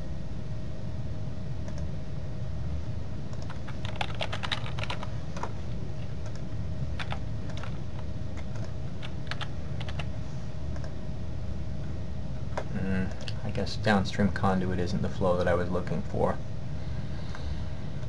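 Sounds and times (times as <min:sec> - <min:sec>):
steady low hum: 0:00.0 - 0:18.0
typing on computer keyboard: 0:03.3 - 0:05.5, 0:07.0 - 0:07.8, 0:08.4 - 0:10.1.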